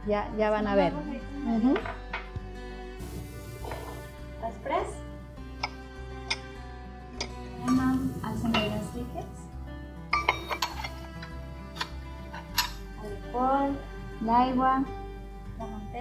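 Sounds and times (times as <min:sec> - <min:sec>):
background music: 0:00.0 - 0:16.0
utensils clinking on steel bowl: 0:10.1 - 0:12.8.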